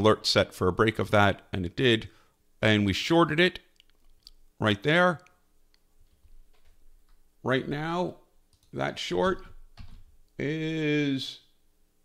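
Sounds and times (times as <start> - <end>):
person speaking: 0.0 - 5.9, 7.3 - 11.6.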